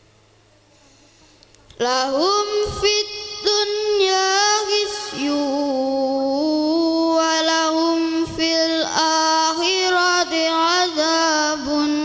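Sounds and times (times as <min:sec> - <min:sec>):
boy reciting in melodic chant: 0:00.5 - 0:12.0.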